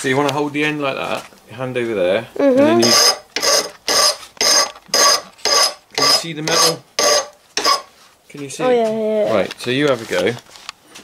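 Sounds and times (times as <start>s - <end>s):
file rasping on metal: 2.8s - 7.9s.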